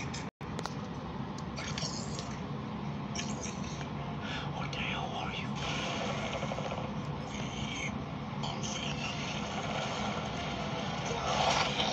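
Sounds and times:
steady low hum: 0:00.0 - 0:11.9
whispered voice: 0:01.5 - 0:02.4, 0:03.2 - 0:05.6, 0:07.2 - 0:09.5.

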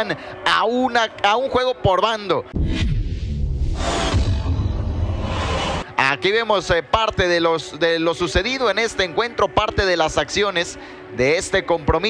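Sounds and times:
rushing whoosh: 0:02.5 - 0:05.9.

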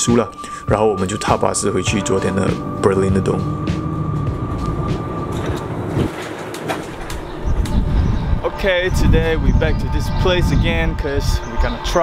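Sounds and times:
bus engine and road rumble: 0:02.2 - 0:10.2.

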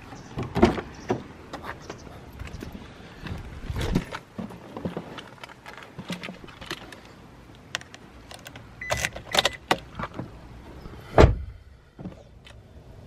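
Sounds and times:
heavy thud: 0:11.1 - 0:12.1.

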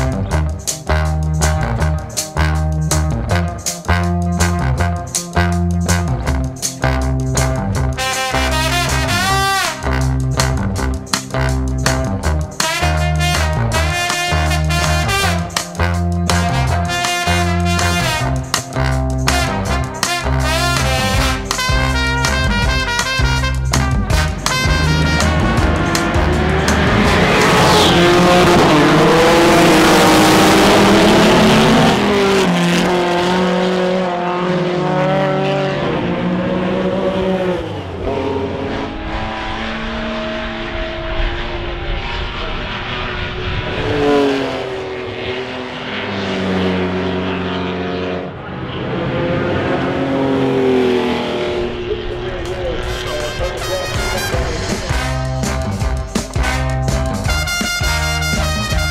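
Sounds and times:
many race car engines revving: 0:00.0 - 0:58.9
race car accelerating past: 0:24.6 - 0:56.0.

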